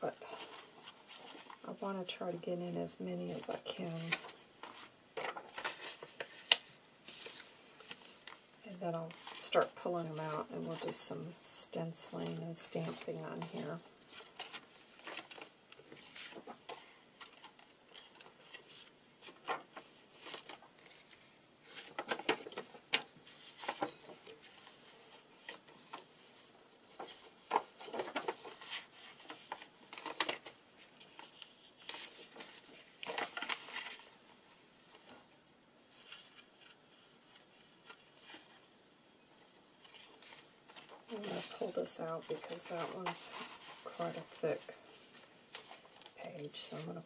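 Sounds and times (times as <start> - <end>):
paper rustling: 0.2 - 1.8, 3.4 - 8.5, 9.1 - 11.0, 12.2 - 47.0.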